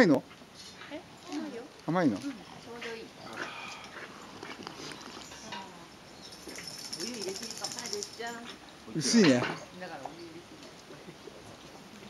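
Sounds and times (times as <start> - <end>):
dog sniffing and snuffling: 0.3 - 5.6.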